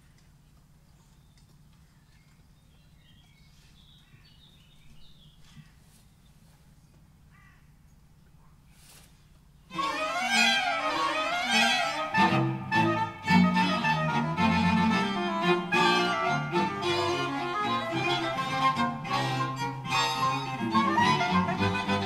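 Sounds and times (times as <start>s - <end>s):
steady low hum: 0.0s - 22.0s
string quartet playing: 9.7s - 22.0s.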